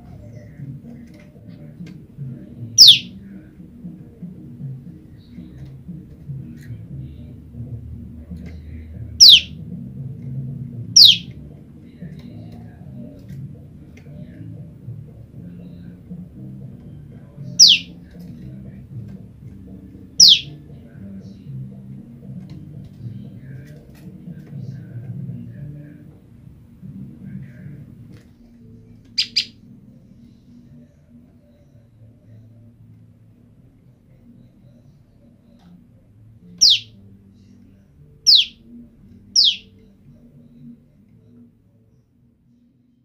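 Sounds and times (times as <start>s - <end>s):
bird calling high sharp notes: 2.8s - 3.1s, 9.2s - 9.5s, 11.0s - 11.3s, 17.6s - 17.9s, 20.2s - 20.5s, 29.2s - 29.5s, 36.6s - 36.9s, 38.3s - 38.6s, 39.4s - 39.7s.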